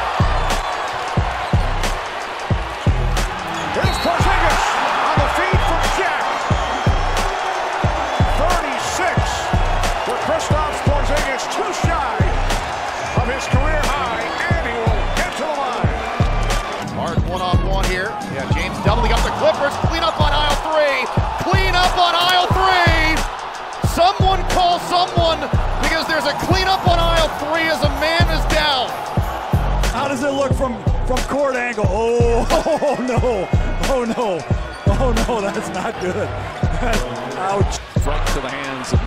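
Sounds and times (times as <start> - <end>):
arena music: 0.0 - 39.0
crowd noise: 0.0 - 39.0.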